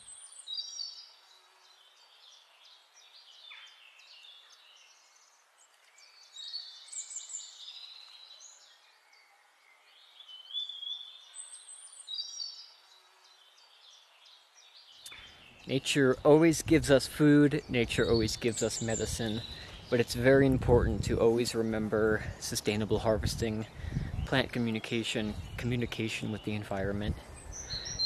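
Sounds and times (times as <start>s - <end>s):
light background hiss: 0.0s - 28.0s
wild birds chirping: 0.0s - 28.0s.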